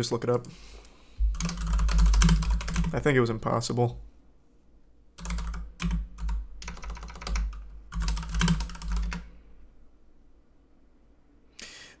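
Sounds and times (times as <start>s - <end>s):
typing on computer keyboard: 1.3s - 3.0s, 5.2s - 9.3s.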